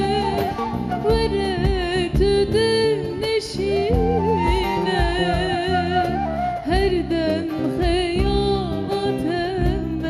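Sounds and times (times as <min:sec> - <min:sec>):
instrumental accompaniment: 0:00.0 - 0:10.0
woman singing into microphone: 0:00.0 - 0:10.0.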